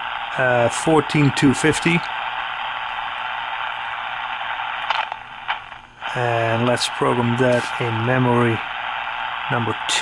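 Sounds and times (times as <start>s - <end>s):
radio receiver hiss: 0.0s - 10.0s.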